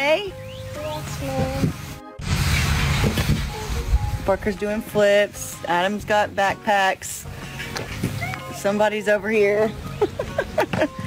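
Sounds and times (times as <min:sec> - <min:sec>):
background music: 0:00.0 - 0:11.0
rumbling microphone noise: 0:01.3 - 0:05.0.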